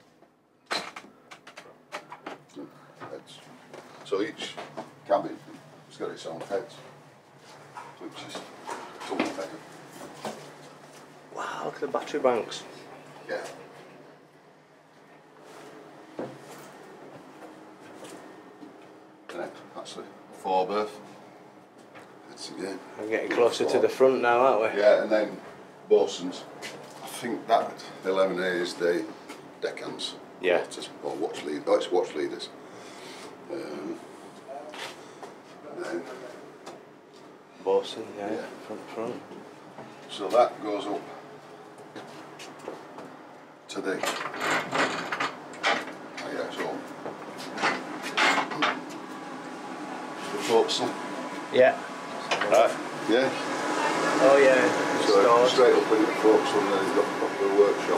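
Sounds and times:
faint steady hum: 0.0s - 57.9s.

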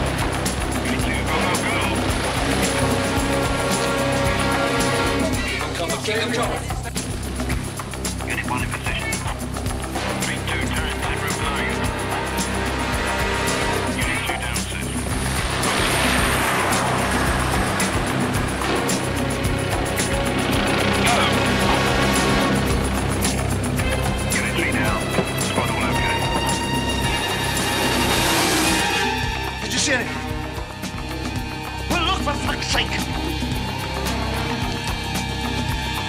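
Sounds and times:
film score music: 0.0s - 36.0s
vehicles arriving: 0.0s - 36.0s.

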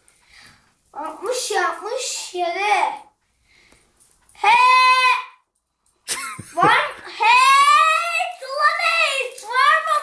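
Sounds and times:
boy shouting: 4.4s - 5.4s, 6.6s - 10.0s.

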